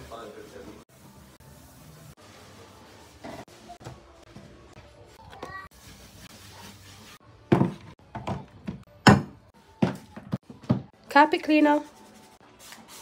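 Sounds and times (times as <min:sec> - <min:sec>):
objects thudding and knocking: 0:07.5 - 0:11.0.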